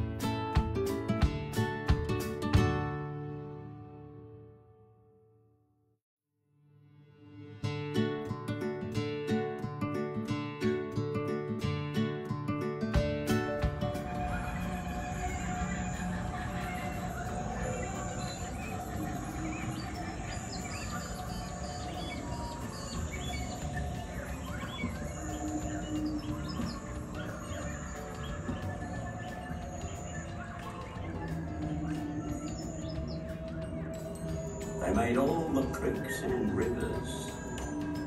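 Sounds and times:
ambient music drone: 7.1s - 38.0s
bird chirps: 13.5s - 38.0s.

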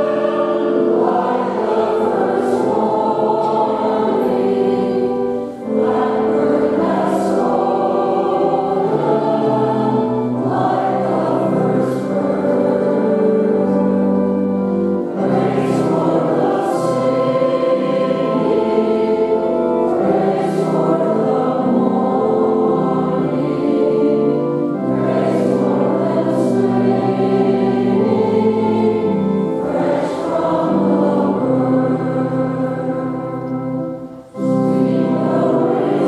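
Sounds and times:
mixed choir singing: 0.0s - 36.0s.

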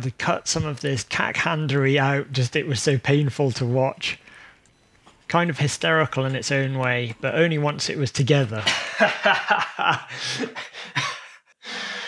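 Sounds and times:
sharp intake of breath: 4.2s - 4.6s
breathy exhales: 4.2s - 4.7s
man laughing: 8.6s - 11.6s.

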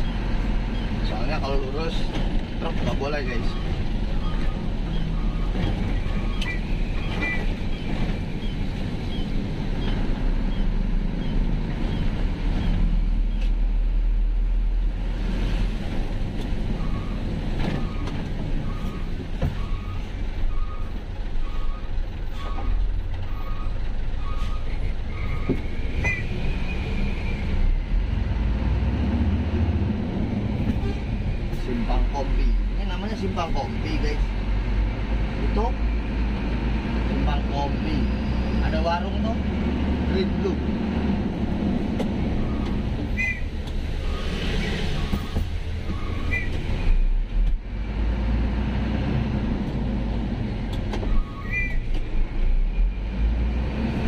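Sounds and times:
road noise: 0.0s - 54.0s
truck engine: 0.0s - 54.0s.

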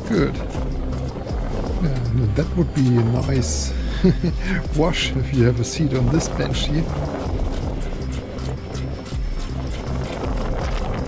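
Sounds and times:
held bass notes: 0.0s - 11.0s
music with steady beat: 0.0s - 11.0s.

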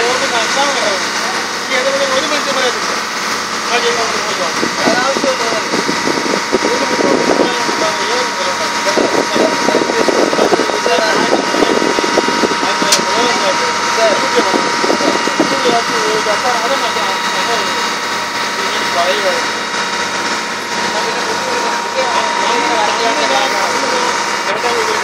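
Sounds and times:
boat engine running: 0.0s - 25.0s
indistinct voices talking: 0.0s - 25.0s.

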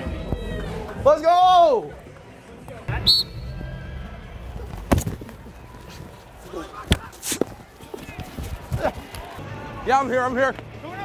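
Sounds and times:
referee whistle blast: 2.9s - 3.6s.

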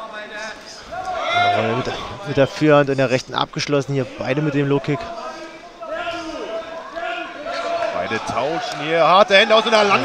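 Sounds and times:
men calling out: 0.9s - 2.4s.

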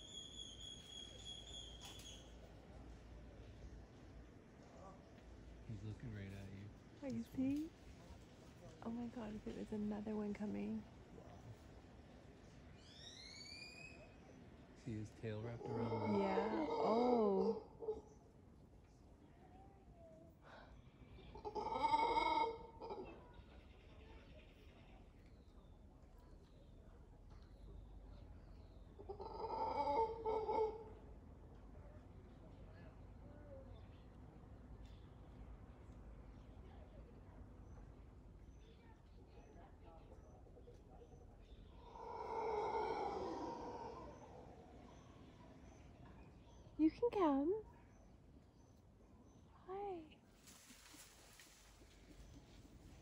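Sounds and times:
howler monkey call: 0.0s - 2.4s, 12.8s - 18.5s, 19.5s - 25.0s, 28.2s - 33.9s, 39.4s - 47.2s
howler monkey roaring: 15.6s - 18.1s, 21.2s - 23.3s, 29.0s - 31.0s, 41.7s - 45.0s.

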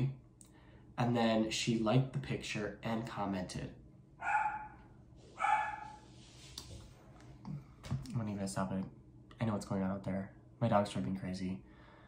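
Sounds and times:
dog barking: 4.2s - 6.1s.

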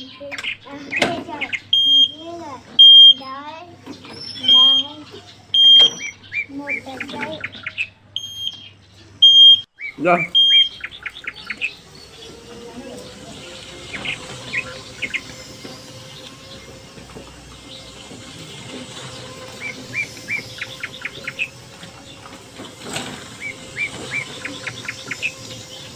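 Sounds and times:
small birds chirping: 0.0s - 25.9s.

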